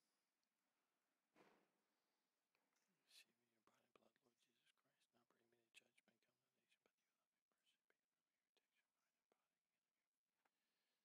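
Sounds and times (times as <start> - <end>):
man murmuring faintly: 2.6 - 9.7.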